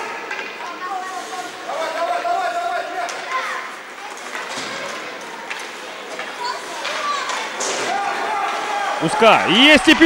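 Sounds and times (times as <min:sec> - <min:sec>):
hockey sticks clacking puck: 0:00.2 - 0:00.9, 0:03.0 - 0:08.7
skates scraping ice: 0:00.3 - 0:09.2
players shouting: 0:01.6 - 0:03.7, 0:06.4 - 0:10.0.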